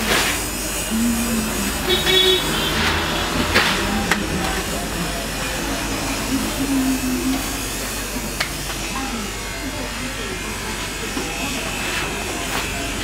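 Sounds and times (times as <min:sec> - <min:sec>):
buzzing hiss: 0:00.0 - 0:13.0
indistinct voices talking: 0:00.0 - 0:13.0
low hum: 0:00.5 - 0:08.7.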